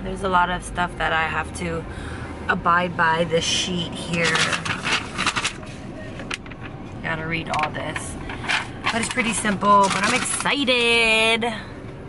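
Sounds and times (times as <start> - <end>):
car cabin rumble: 0.0 - 12.0
paper rustling: 4.1 - 6.7, 8.3 - 10.6.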